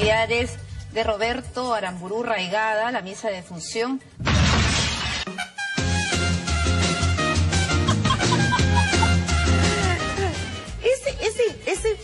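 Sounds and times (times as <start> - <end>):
loud smashing crash: 4.2 - 5.3
latin dance music: 5.4 - 12.0.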